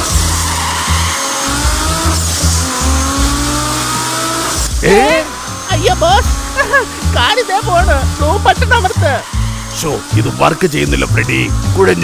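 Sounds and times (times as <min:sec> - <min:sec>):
cartoon car engine running hard: 0:00.0 - 0:12.0.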